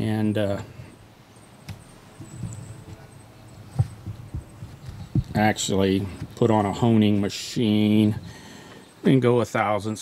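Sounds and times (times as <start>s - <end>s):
faint low background noise: 0.0s - 10.0s
soft knocks and thumps: 1.6s - 6.4s.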